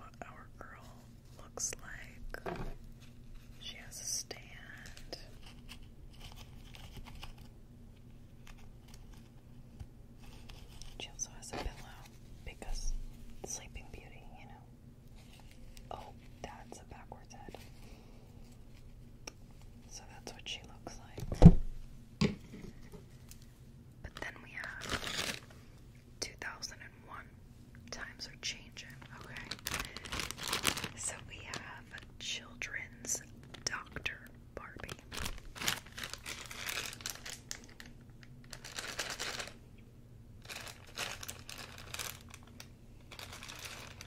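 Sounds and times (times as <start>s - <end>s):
soft whispering: 0.0s - 2.8s, 3.4s - 5.7s, 10.8s - 18.4s, 19.8s - 21.3s, 24.0s - 25.2s, 26.2s - 35.4s
plastic bag crinkling: 24.1s - 25.6s, 28.8s - 32.4s, 33.1s - 33.8s, 34.7s - 39.6s, 40.4s - 44.0s.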